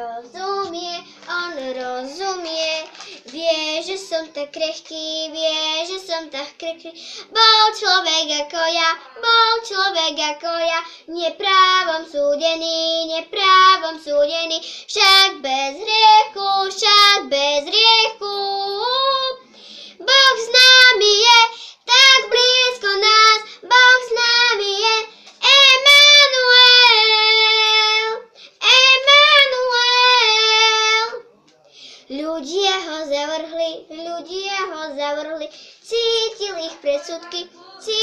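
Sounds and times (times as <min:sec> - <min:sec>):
girl singing unaccompanied: 0:00.0 - 0:31.2, 0:32.1 - 0:38.0.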